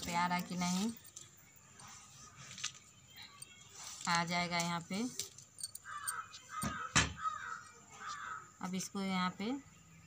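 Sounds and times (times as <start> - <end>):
bird harsh calls: 5.8 - 8.5.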